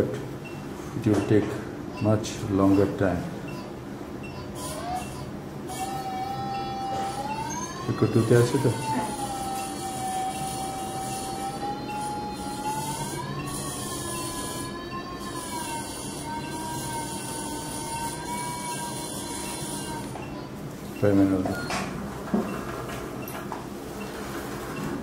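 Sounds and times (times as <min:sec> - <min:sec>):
continuous gliding machine tone: 0:02.7 - 0:21.8.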